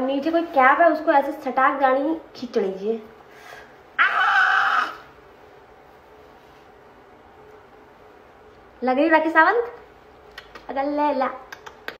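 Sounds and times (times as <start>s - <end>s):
woman's strained cry: 4.0s - 5.1s.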